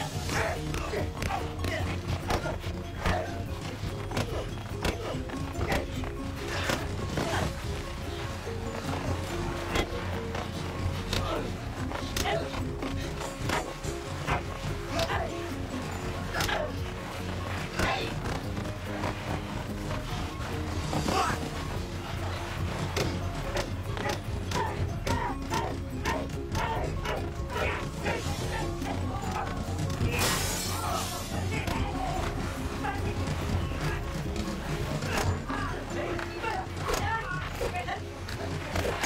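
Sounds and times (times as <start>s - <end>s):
fighters shouting: 0.0s - 39.0s
film background music: 0.0s - 39.0s.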